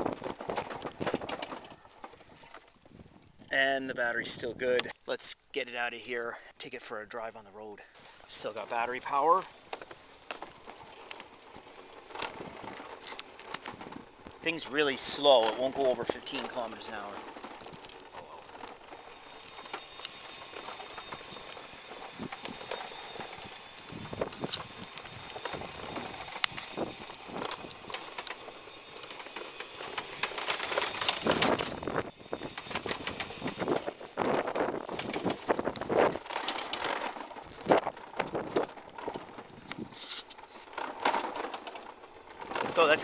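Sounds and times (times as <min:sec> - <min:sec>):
scooter road noise: 0:00.0 - 0:02.8, 0:08.0 - 0:43.0
scooter clicks and rattles: 0:00.0 - 0:02.9, 0:08.4 - 0:43.0.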